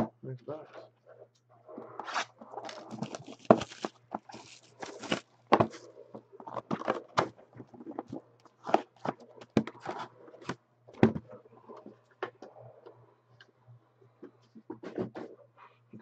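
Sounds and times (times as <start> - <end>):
plastic wrap and cardboard rustling: 2.1 - 10.1.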